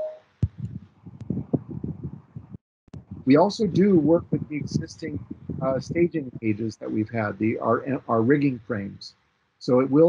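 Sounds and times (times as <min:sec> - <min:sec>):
low thumps: 0:00.4 - 0:07.6.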